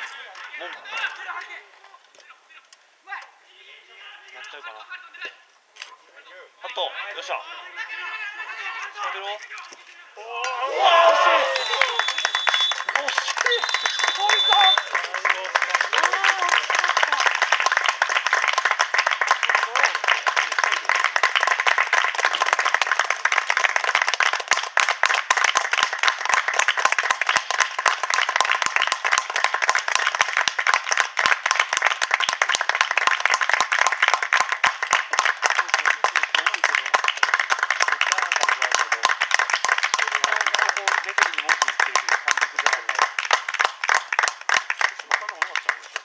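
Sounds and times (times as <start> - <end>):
spectators clapping: 10.4 - 46.0.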